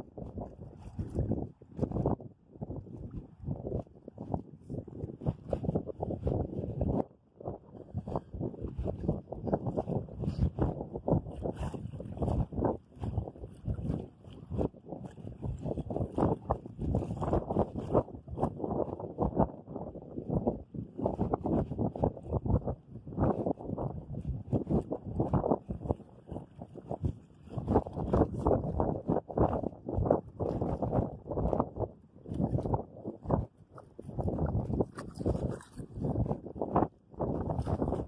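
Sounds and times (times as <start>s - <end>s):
wind buffeting microphone: 0.0s - 38.0s.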